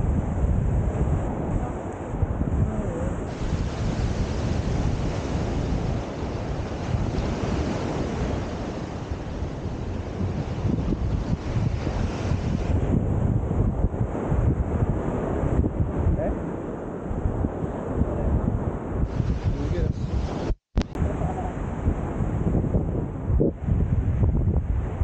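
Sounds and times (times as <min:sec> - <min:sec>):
surf breaking on beach: 0:00.0 - 0:25.0
wind buffeting microphone: 0:00.0 - 0:25.0.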